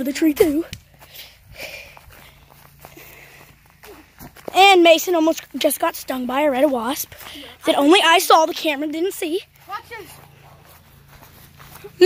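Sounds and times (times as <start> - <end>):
quiet footsteps on grass: 0.1 - 12.0.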